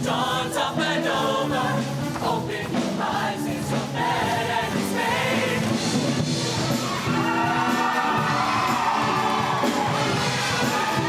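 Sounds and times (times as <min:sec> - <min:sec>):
audience cheering: 0:06.6 - 0:11.0.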